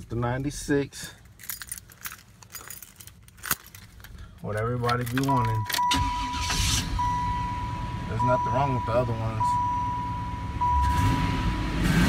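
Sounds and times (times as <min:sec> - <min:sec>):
car keys jingling: 0:00.2 - 0:11.1.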